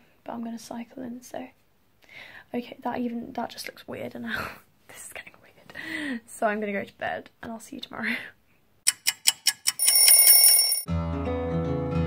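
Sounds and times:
alarm ringing high tone: 9.8s - 10.9s.

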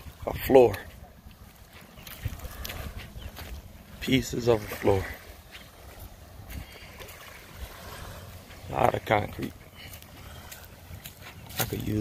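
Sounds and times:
small waves lapping on shore: 0.0s - 12.0s
wind buffeting microphone: 0.0s - 12.0s.

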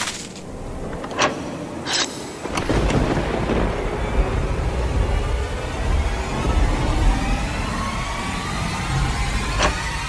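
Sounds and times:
deep thunder-like rumble: 2.4s - 10.0s.

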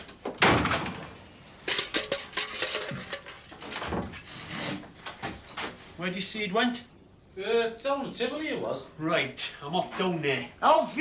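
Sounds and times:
knocks and clatter: 0.1s - 4.2s
wooden door banging: 0.3s - 1.2s.

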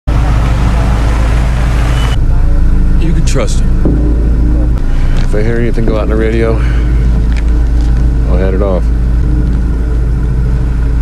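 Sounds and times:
constant rushing noise: 0.1s - 11.0s
vehicle engine rumbling: 0.1s - 11.0s.

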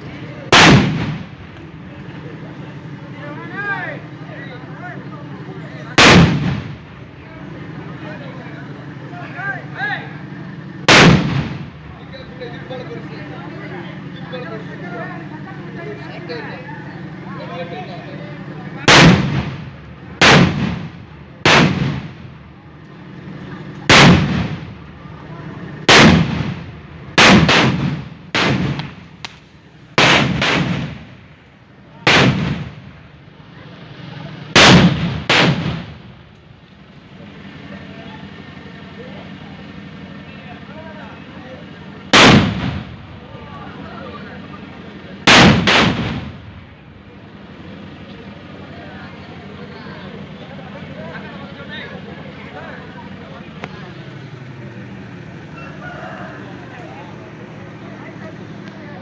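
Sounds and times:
firecrackers exploding: 0.4s - 1.6s, 5.9s - 7.0s, 10.8s - 11.9s, 18.8s - 22.4s, 23.7s - 24.9s, 25.8s - 31.3s, 32.0s - 33.0s, 34.4s - 36.1s, 42.1s - 43.1s, 45.2s - 46.6s.

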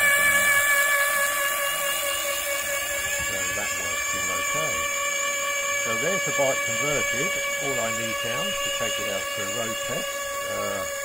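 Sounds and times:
electric motor whine: 0.0s - 11.0s.

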